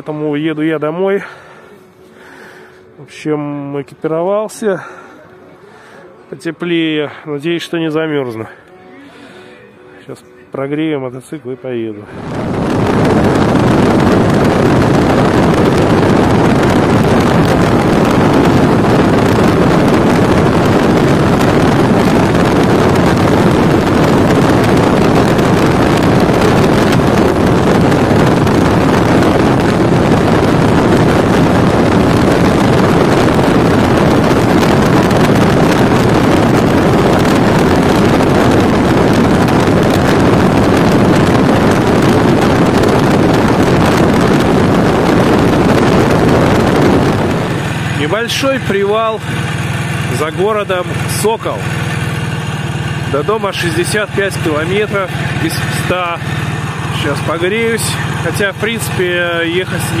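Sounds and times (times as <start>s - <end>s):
wind rushing over microphone: 12.0s - 60.0s
motorcycle engine running: 12.1s - 60.0s.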